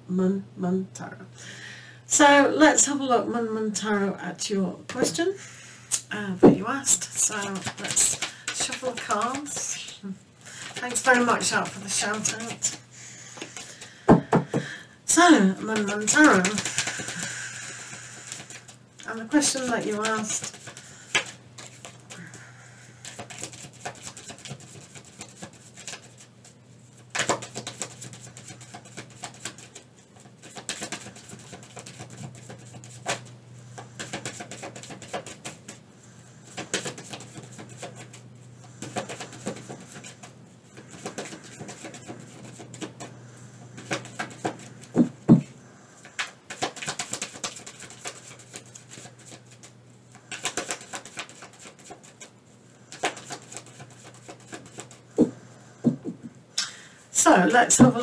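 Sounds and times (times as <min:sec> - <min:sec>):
faint steady hum: 0:00.0 - 0:58.0
cards being shuffled: 0:06.9 - 0:14.6, 0:15.6 - 0:22.4, 0:23.0 - 0:35.8, 0:36.4 - 0:43.1, 0:43.7 - 0:45.1, 0:46.0 - 0:52.3, 0:52.9 - 0:55.0.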